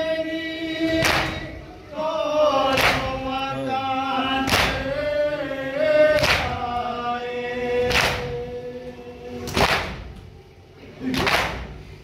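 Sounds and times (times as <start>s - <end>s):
men chanting a lament: 0.0s - 10.2s.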